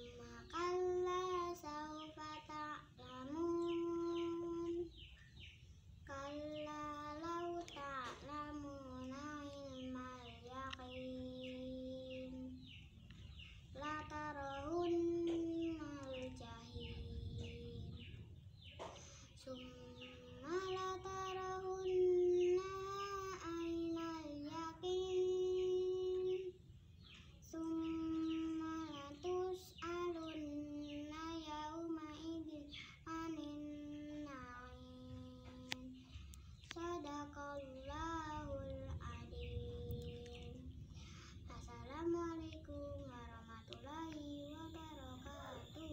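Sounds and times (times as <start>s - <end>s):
girl chanting verses: 0.0s - 5.1s, 6.0s - 12.8s, 13.7s - 18.2s, 19.3s - 26.6s, 27.4s - 45.9s.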